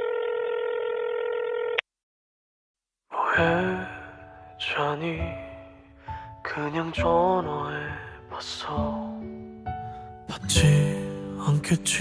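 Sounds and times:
telephone ringback tone: 0.0 - 1.8.

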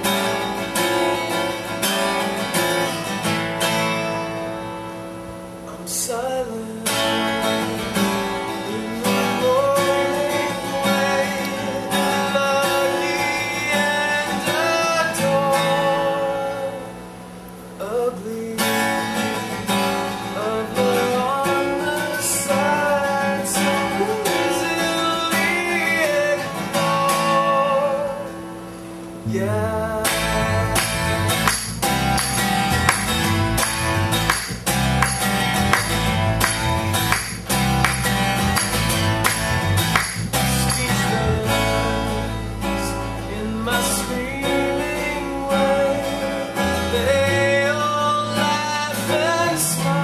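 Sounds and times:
strummed acoustic guitars: 0.0 - 50.0
person singing lead vocal: 5.7 - 17.0, 20.3 - 28.4, 29.2 - 31.3, 40.4 - 50.0.

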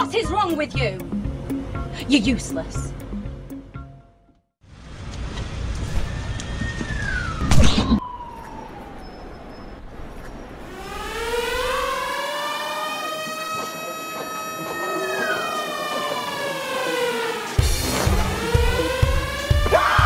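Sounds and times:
siren wailing: 6.0 - 20.0.

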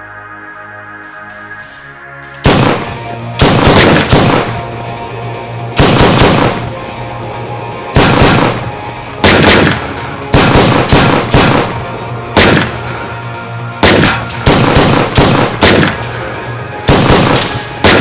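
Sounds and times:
gunshots: 2.4 - 4.8, 5.7 - 6.8, 8.0 - 13.1, 13.8 - 16.3, 16.9 - 18.0.

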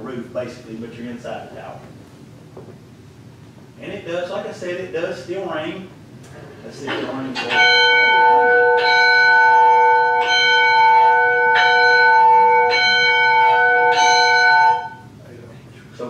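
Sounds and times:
church tower bell ringing: 7.5 - 15.0.

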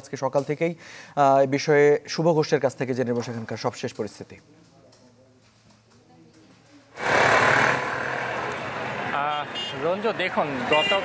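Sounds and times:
street noise with traffic: 2.6 - 11.0.

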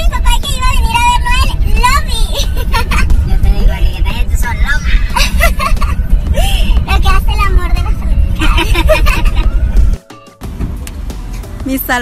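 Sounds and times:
car engine rumble and road noise: 0.0 - 12.0.

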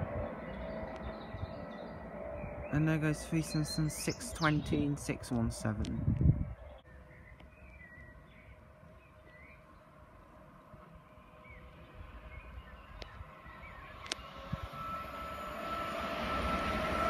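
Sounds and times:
electric train approaching: 0.0 - 5.8, 8.7 - 17.0
train whine: 0.0 - 6.6, 9.6 - 17.0.

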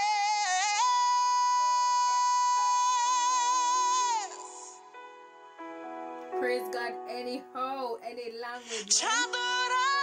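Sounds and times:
man singing high note: 0.0 - 4.9
soft sustained backing music: 0.0 - 10.0.

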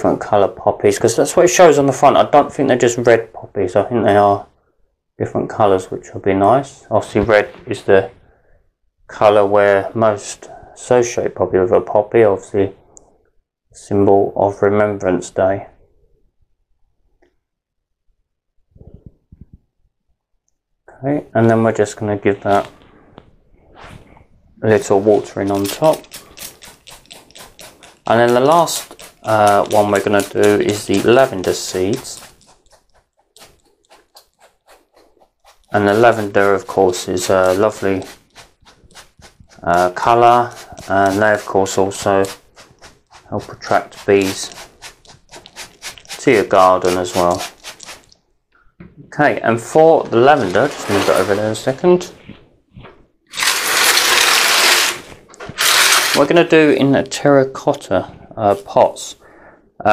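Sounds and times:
pots in tray scraping on tiles: 23.8 - 48.2, 49.7 - 52.1, 53.3 - 56.3
water pattering onto compost: 25.3 - 48.2.

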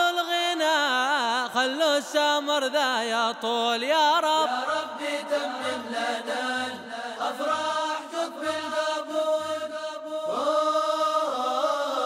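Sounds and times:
voices singing ornamented melody: 4.0 - 12.0.

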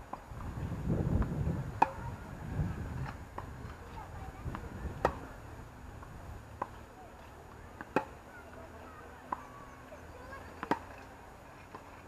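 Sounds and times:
tennis racket hitting ball: 1.1 - 2.2, 2.9 - 5.4, 6.0 - 8.3, 10.2 - 11.0
tennis ball bounce: 1.2 - 2.1, 3.0 - 5.4, 6.0 - 8.2, 10.4 - 11.0.

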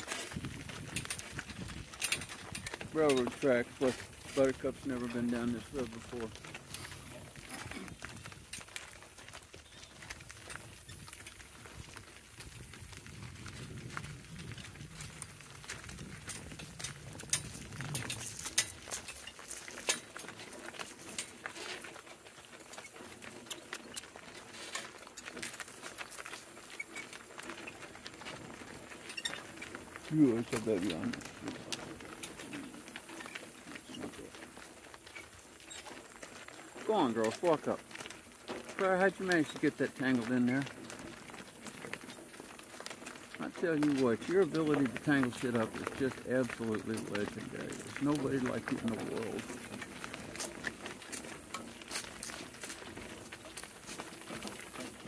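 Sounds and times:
harness chain rattling: 0.0 - 8.9, 14.9 - 55.0
hooves and wheels on gravel: 0.0 - 55.0.

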